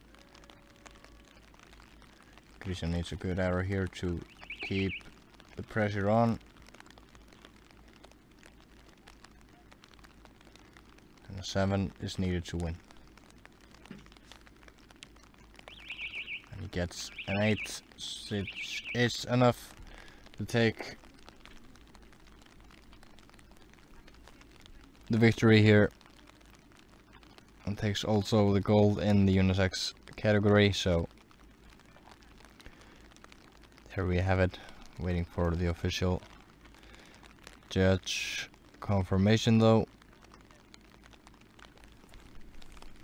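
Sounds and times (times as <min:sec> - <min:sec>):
light rain pattering: 0:00.0 - 0:43.0.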